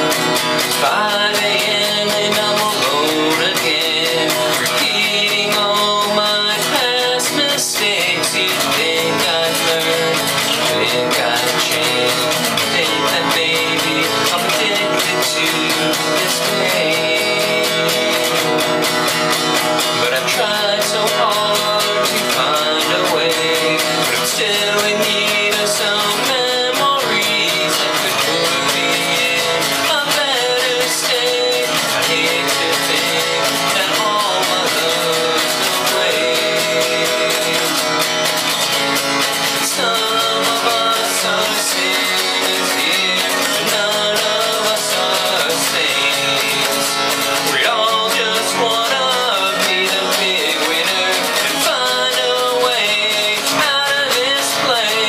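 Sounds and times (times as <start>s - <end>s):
acoustic guitar strummed: 0.0s - 55.0s
man singing: 0.0s - 55.0s.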